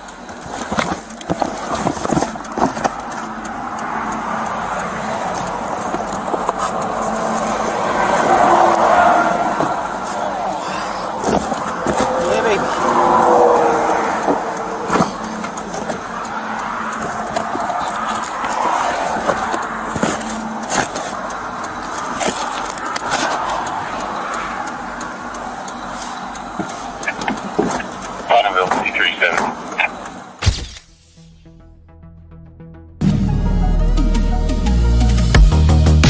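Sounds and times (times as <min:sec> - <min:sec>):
passing traffic: 0:00.0 - 0:36.0
cardboard boxes knocking and rustling: 0:00.5 - 0:03.2, 0:11.2 - 0:12.3
muffled voices: 0:27.0 - 0:30.2.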